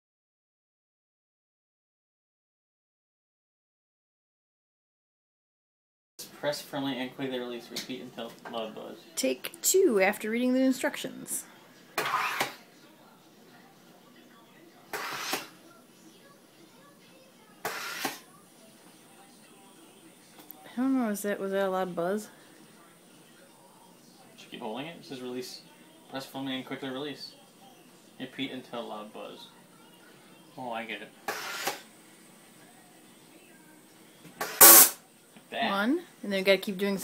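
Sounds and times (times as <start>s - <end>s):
gas hissing into water: 12.0s - 12.6s, 14.9s - 15.6s, 17.6s - 18.2s, 31.3s - 31.8s, 34.4s - 35.0s
loud buzz: 34.4s - 35.0s.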